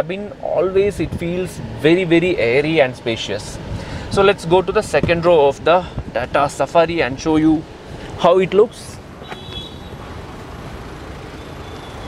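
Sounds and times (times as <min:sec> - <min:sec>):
road traffic hum: 0:00.0 - 0:12.0.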